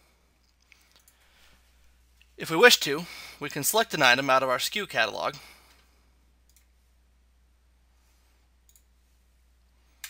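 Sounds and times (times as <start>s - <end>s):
computer mouse clicks: 6.5s - 6.7s, 8.7s - 8.9s.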